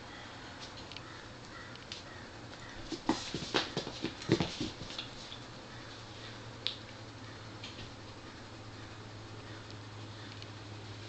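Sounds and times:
kitten pouncing on wooden floor: 0:02.9 - 0:05.1.

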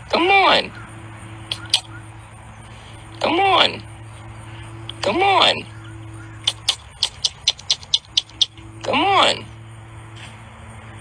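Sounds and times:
sharp mouth clicks: 0:01.5 - 0:02.0, 0:06.4 - 0:08.7.

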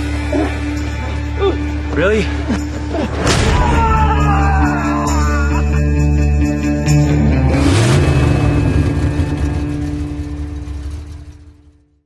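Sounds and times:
deep low drone: 0:04.6 - 0:12.0.

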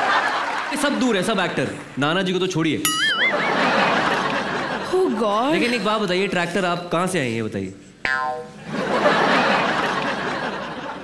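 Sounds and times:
studio audience laughing: 0:00.0 - 0:01.0, 0:03.0 - 0:05.9, 0:08.6 - 0:11.0
comedy sound effect sting: 0:02.9 - 0:04.0.

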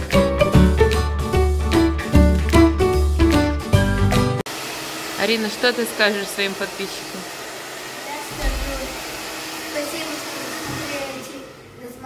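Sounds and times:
hair dryer blowing: 0:04.4 - 0:12.0.

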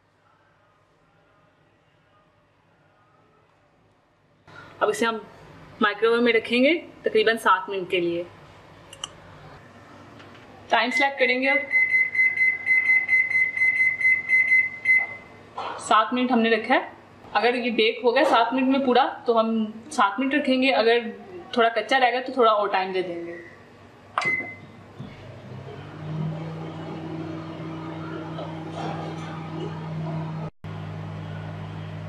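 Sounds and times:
microwave oven humming: 0:04.4 - 0:15.8, 0:16.4 - 0:32.0.

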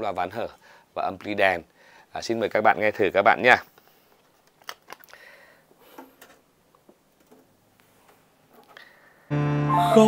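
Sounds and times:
clicks and rustling of cd handling: 0:03.7 - 0:05.2.

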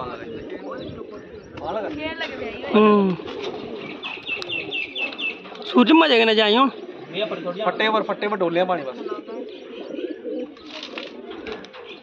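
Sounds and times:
pigeons cooing: 0:00.0 - 0:12.0.

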